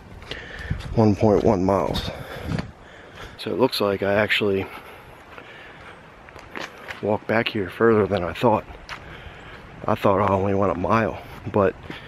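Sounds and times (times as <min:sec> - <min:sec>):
footsteps on dry leaves: 0:04.6 - 0:10.4.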